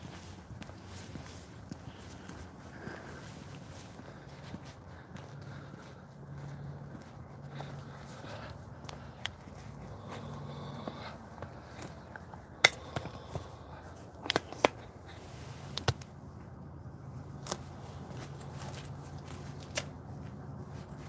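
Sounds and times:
footsteps on pavement: 0.0s - 21.0s
handling clicks and knocks: 11.7s - 14.9s.

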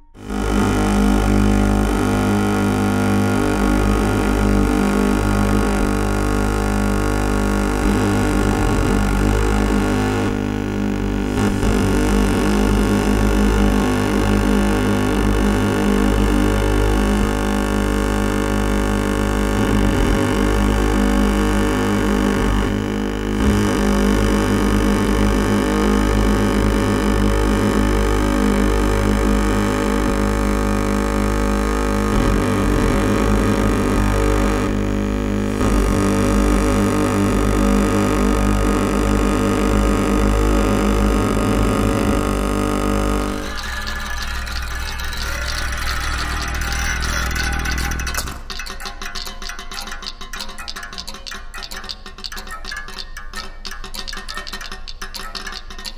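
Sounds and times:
strong low hum: 0.0s - 48.5s
amplified drone of held tones: 0.0s - 55.9s.

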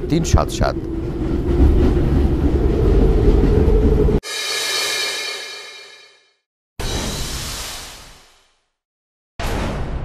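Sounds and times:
shimmering chime transition: 4.2s - 6.2s.

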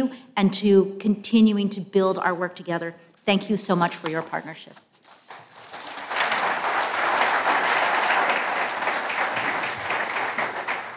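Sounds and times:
audience applauding: 5.2s - 10.9s.

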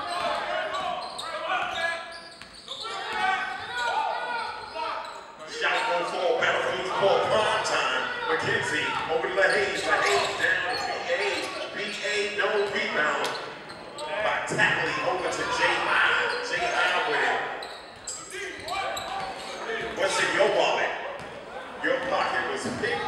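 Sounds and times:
people shouting and chattering: 0.0s - 23.0s.

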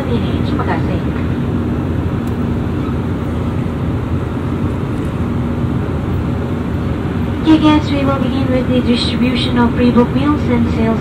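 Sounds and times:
airplane cabin airflow and engine noise: 0.0s - 11.0s
faint drone tone: 0.0s - 11.0s.

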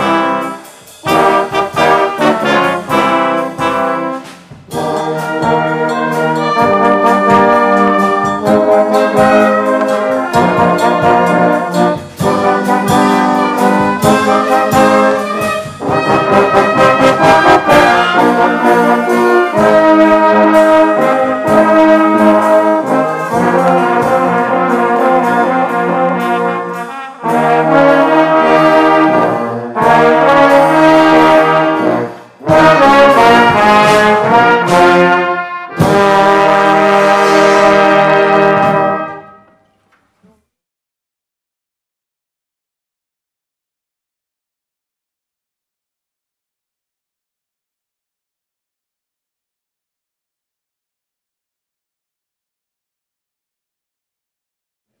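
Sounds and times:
brass band playing sustained chords: 0.0s - 39.6s.

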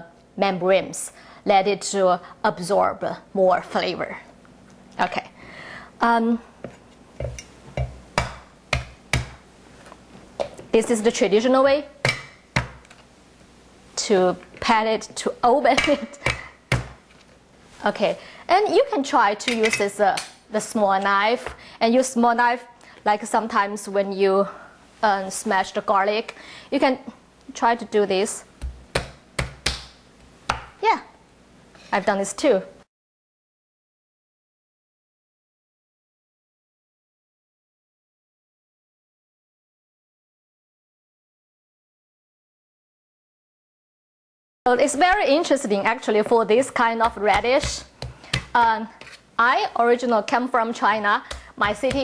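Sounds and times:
palm smacking knife on wood: 7.2s - 9.4s, 28.6s - 30.8s, 47.0s - 49.2s.

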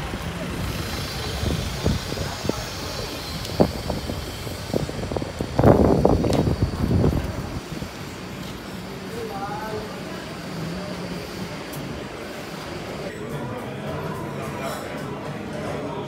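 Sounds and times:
low rumbling: 0.0s - 8.0s
street traffic: 0.0s - 16.0s.

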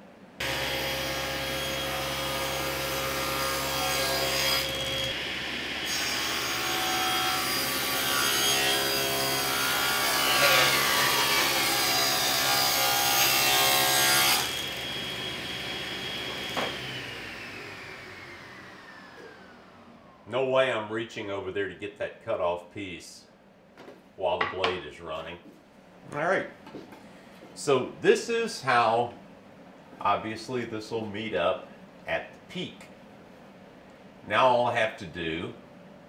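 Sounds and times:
saw blade whine: 0.4s - 20.2s
table saw cutting wood: 0.4s - 20.2s.

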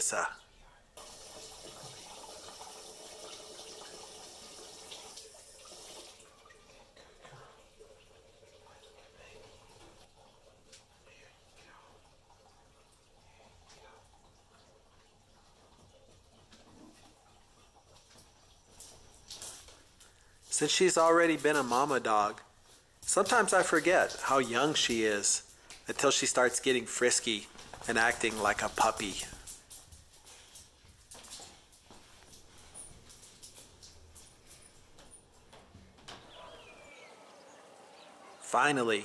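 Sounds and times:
water splashing in sink: 1.0s - 10.9s, 23.1s - 29.6s.

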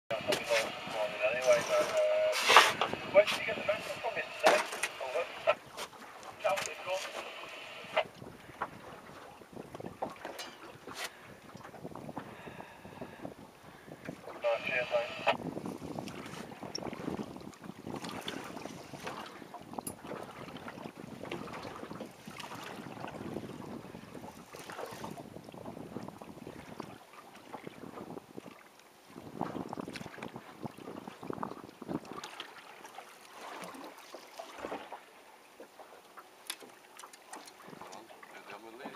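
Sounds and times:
sea water washing: 0.1s - 38.9s
wind: 0.1s - 38.9s.

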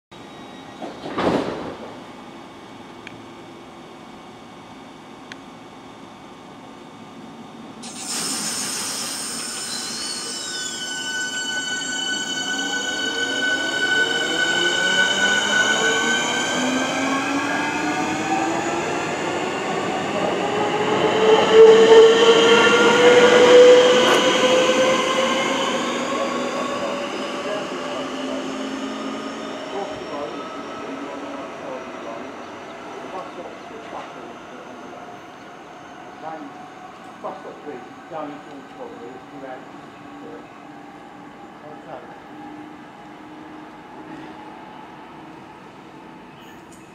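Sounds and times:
electric train motor whine: 7.2s - 31.0s.

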